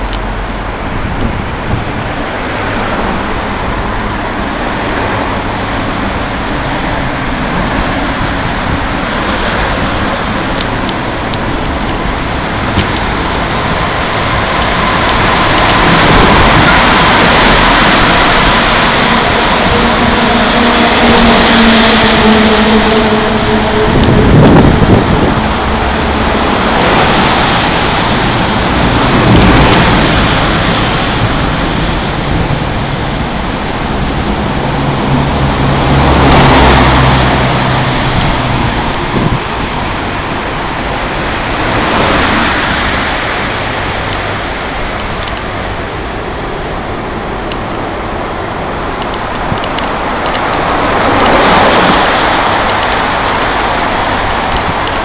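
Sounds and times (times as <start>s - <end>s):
heavy vehicle engine hum: 0.0s - 55.0s
road traffic rushing: 0.0s - 55.0s.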